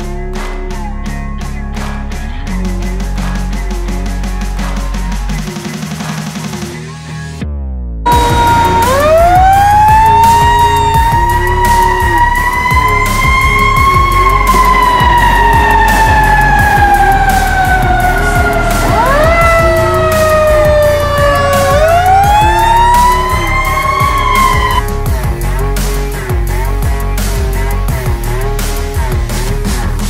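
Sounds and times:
fire engine siren wailing: 0:08.1 - 0:24.8.

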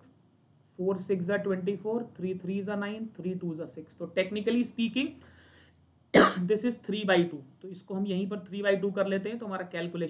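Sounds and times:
man coughing: 0:06.2 - 0:06.5.

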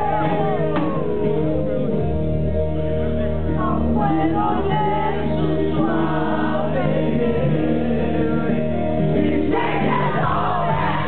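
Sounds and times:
acoustic guitar: 0:00.0 - 0:11.0.

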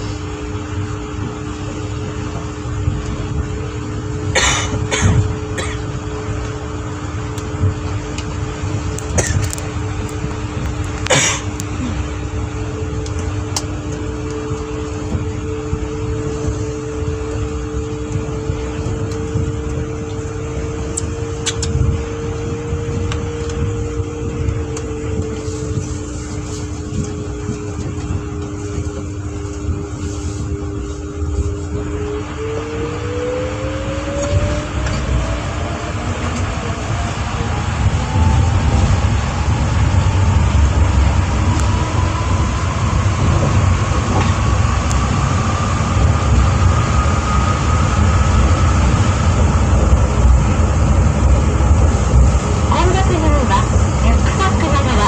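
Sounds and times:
train cabin low rumble: 0:00.0 - 0:55.0
train motor whine: 0:00.0 - 0:55.0.

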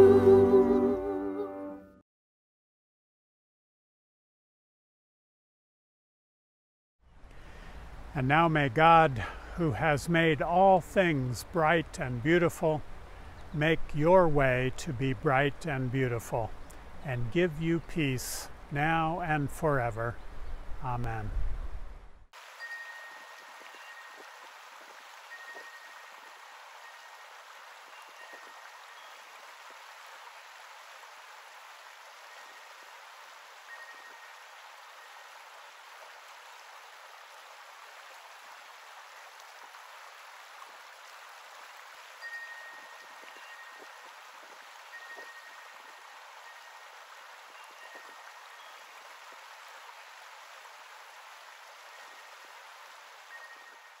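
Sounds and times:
creek water running over rocks: 0:07.2 - 0:21.3, 0:22.4 - 0:54.0
wind chime ringing: 0:22.6 - 0:24.2, 0:33.7 - 0:34.4, 0:42.2 - 0:43.8, 0:44.9 - 0:46.8, 0:47.6 - 0:48.8, 0:53.3 - 0:54.0.

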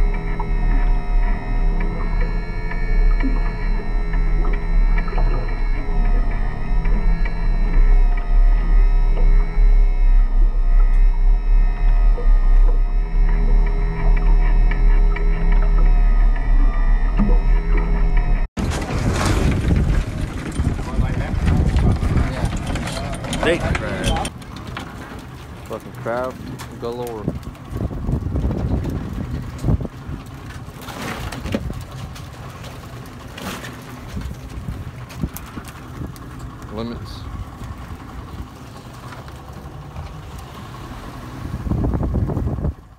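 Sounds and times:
droning background music: 0:00.0 - 0:18.5
deep steady hum: 0:00.0 - 0:24.3
wind rumbling on microphone: 0:00.0 - 0:33.2, 0:33.9 - 0:42.9
rustling scrape: 0:18.6 - 0:20.9.

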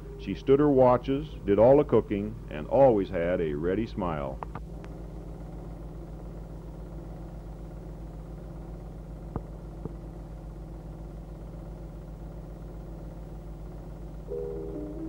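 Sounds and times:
low electrical hum with flutter: 0:00.0 - 0:15.0.

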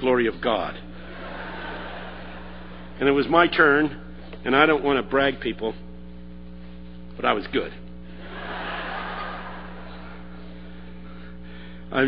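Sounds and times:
low mains hum: 0:00.0 - 0:12.0
steady background hiss: 0:00.0 - 0:12.0.

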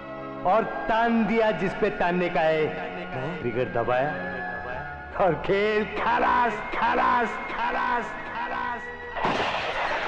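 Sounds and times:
film score with singing: 0:00.0 - 0:09.8
loud handgun shot: 0:09.2 - 0:10.0.

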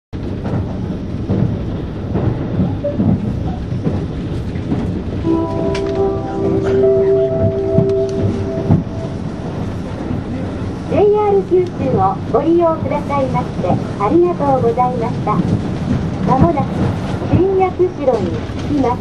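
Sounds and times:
train rumble inside carriage: 0:00.2 - 0:19.0
chime over pa: 0:05.3 - 0:10.2.

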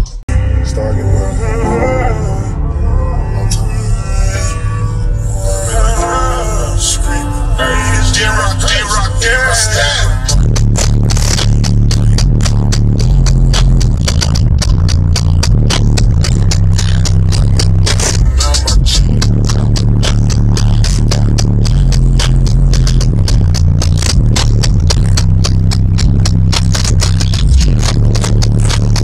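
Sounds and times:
bass-heavy music on car stereo: 0:00.0 - 0:29.0.

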